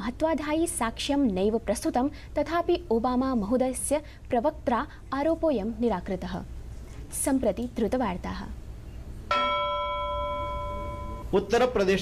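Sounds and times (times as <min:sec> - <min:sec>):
bell-like chime: 0:09.3 - 0:11.3.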